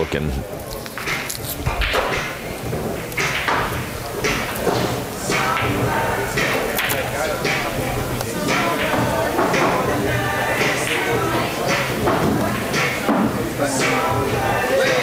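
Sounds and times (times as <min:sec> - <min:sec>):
indistinct voices in large hall: 0:00.0 - 0:15.0.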